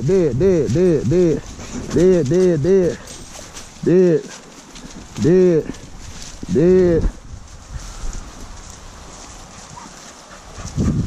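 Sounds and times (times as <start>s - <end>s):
rustling near microphone: 0.0s - 11.0s.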